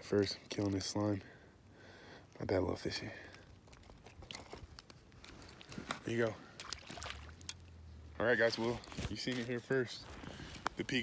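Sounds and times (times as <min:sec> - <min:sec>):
wet squelches of fish handled: 0:03.2 - 0:07.8.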